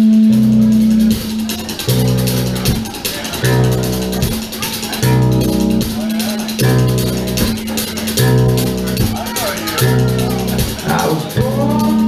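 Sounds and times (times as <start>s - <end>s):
drum kit: 0.0s - 12.0s.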